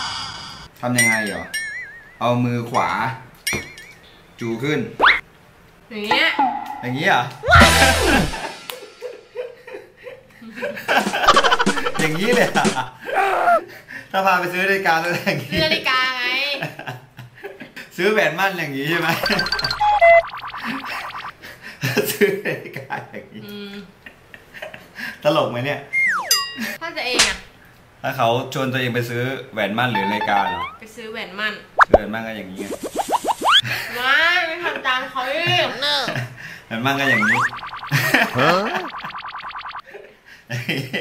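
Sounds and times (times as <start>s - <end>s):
comic boing sound effect: 6.1s - 8.7s, 19.2s - 21.4s, 30.0s - 30.8s, 37.0s - 39.8s
descending comedy tone: 6.1s - 9.1s, 19.2s - 21.4s, 25.9s - 26.6s, 29.9s - 30.8s, 37.0s - 39.8s
springy flutter: 31.8s - 33.6s, 37.0s - 39.8s.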